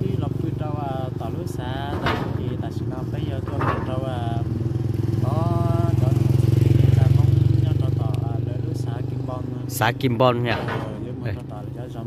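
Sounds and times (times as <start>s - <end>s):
motorcycle engine passing: 0.0s - 12.0s.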